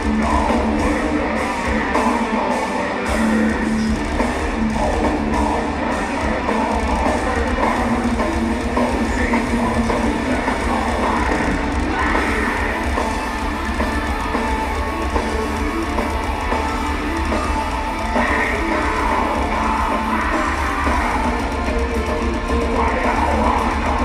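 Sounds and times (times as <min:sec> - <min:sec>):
distorted electric guitars: 0:00.0 - 0:24.0
drum kit: 0:00.0 - 0:24.0.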